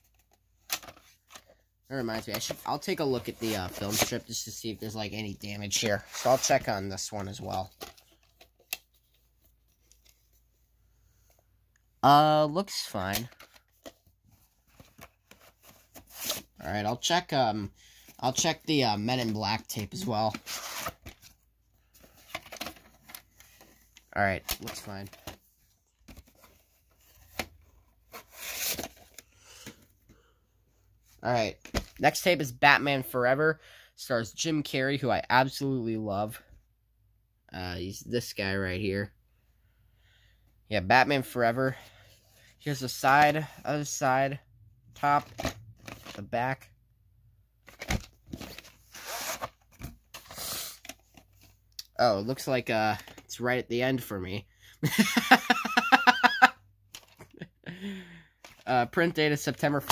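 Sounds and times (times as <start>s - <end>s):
plastic cassette handling: 0.1s - 1.6s, 13.1s - 14.1s, 22.0s - 25.4s.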